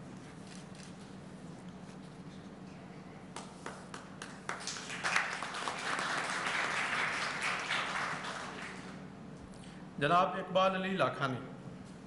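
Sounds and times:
audience applauding: 0:04.2 - 0:09.0.

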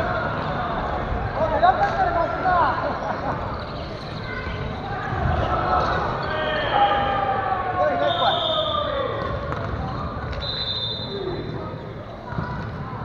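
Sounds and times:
players talking: 0:00.0 - 0:13.0.

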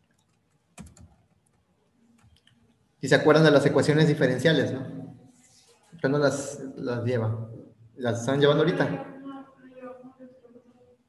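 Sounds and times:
typing on computer keyboard: 0:00.0 - 0:01.6.

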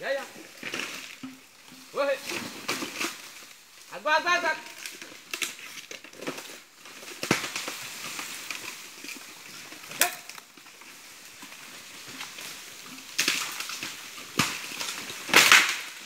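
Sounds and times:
bamboo cracking: 0:00.0 - 0:03.9, 0:04.6 - 0:16.0
brush rustling and crackling: 0:00.0 - 0:16.0.

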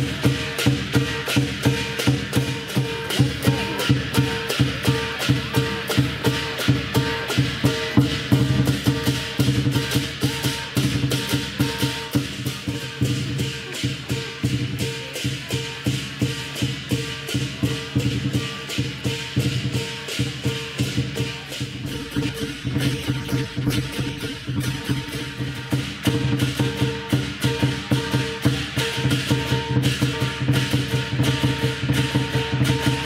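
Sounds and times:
clashing cymbals: 0:00.0 - 0:33.0
large drum beaten fast: 0:00.0 - 0:33.0
ringing gong: 0:00.0 - 0:33.0.

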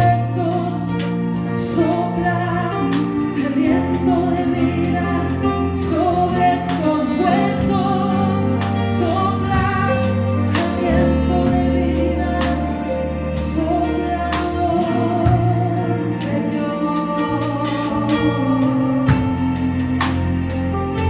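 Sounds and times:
keyboard: 0:00.0 - 0:21.0.

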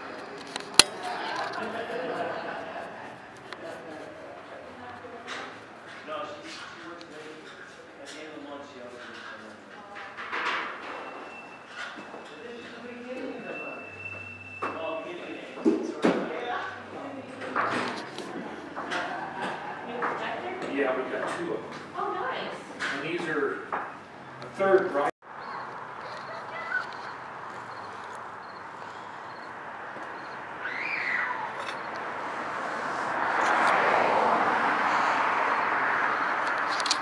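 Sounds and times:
faint indistinct voices: 0:00.0 - 0:23.7, 0:26.0 - 0:27.6.

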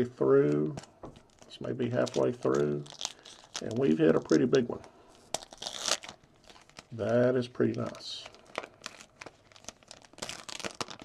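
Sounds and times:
foil wrapper tearing and crinkling: 0:00.4 - 0:11.0.

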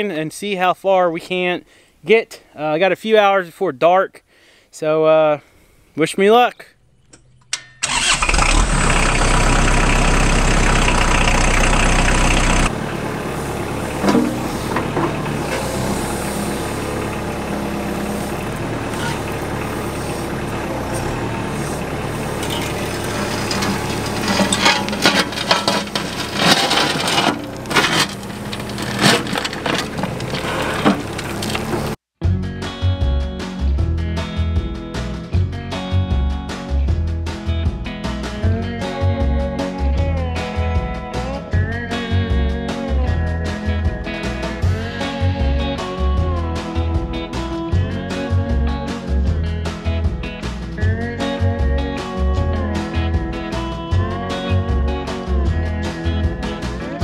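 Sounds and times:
diesel engine running: 0:07.8 - 0:32.0, 0:41.6 - 0:57.0.

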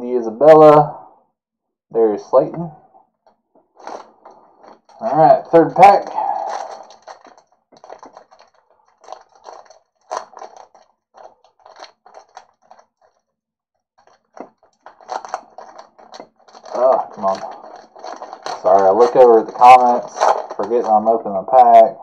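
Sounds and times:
foil wrapper crinkling and tearing: 0:03.6 - 0:13.2, 0:14.0 - 0:21.2.

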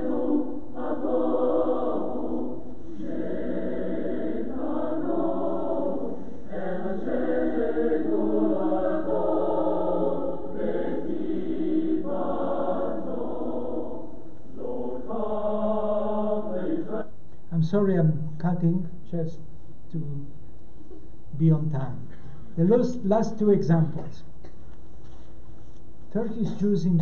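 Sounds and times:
choir singing: 0:00.0 - 0:17.1.

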